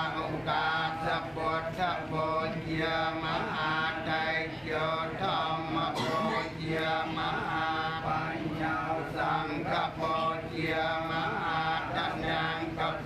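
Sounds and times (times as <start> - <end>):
group chanting prayers: 0.0 - 13.0.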